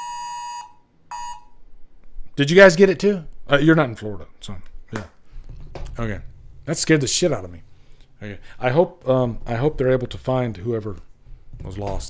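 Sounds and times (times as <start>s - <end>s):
two-tone emergency alert tone: 0.0s - 1.5s.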